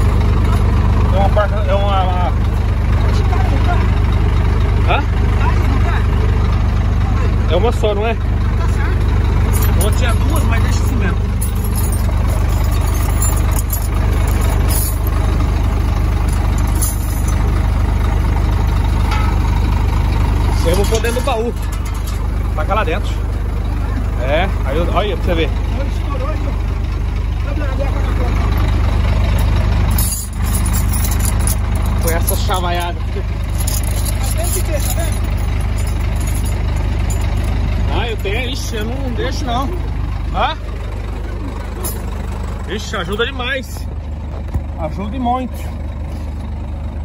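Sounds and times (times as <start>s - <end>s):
truck diesel engine idling: 0.0s - 47.0s.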